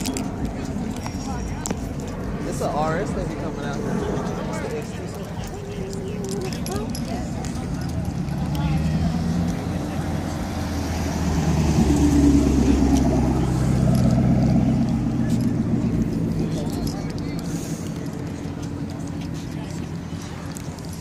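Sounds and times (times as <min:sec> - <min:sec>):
car engine passing slowly: 0:00.0 - 0:21.0.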